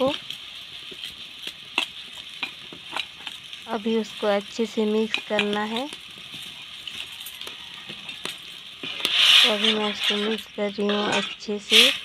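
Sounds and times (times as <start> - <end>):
food simmering hiss: 0.0 - 12.0.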